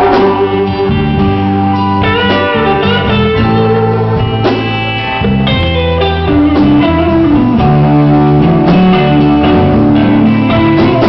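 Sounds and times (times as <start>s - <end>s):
electric guitar bending notes: 0.0s - 11.0s
live blues band playing: 0.0s - 11.0s.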